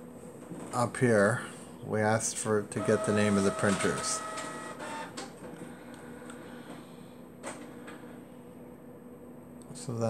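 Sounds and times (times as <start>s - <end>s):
printer whirring: 2.7s - 5.7s
printer clicks: 2.8s - 5.3s.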